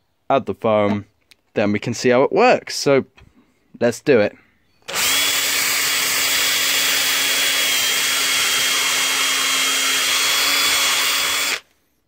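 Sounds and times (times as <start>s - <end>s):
cordless drill running: 4.9s - 11.8s.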